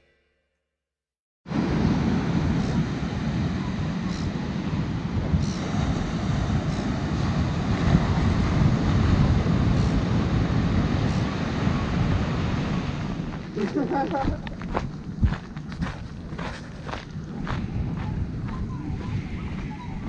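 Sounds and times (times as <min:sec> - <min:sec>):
surf breaking on beach: 0:01.5 - 0:14.4
wind blowing across microphone: 0:01.5 - 0:20.0.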